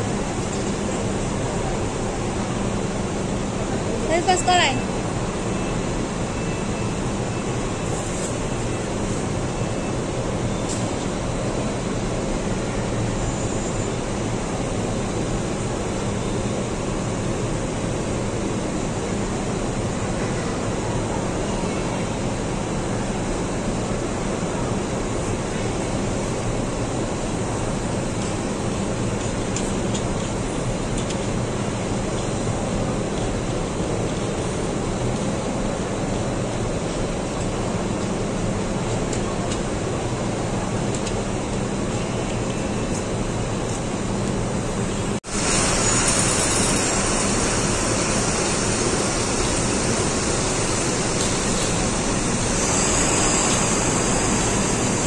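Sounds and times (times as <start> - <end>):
bus engine idling: 0.0 - 55.0.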